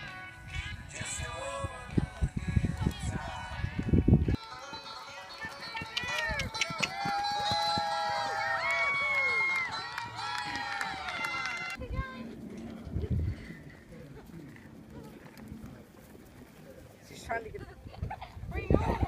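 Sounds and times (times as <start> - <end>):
music with singing voice: 0.0 - 6.4
faint outdoor sound: 0.0 - 19.0.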